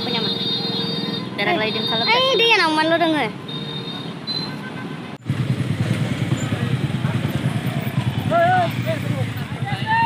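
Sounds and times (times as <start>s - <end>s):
motorcycle engine rumbling: 5.2s - 10.0s.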